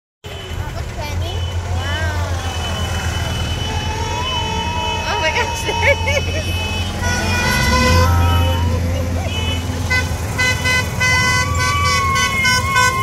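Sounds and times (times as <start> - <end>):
golf carts driving past: 0.3 - 13.0
people's voices: 0.3 - 13.0
person laughing: 4.9 - 6.9, 8.4 - 9.8.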